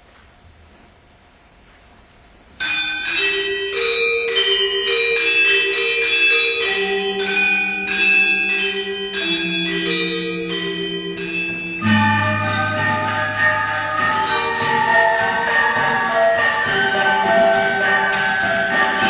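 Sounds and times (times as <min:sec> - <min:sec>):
gamelan metallophones playing: 0:02.6 - 0:19.0.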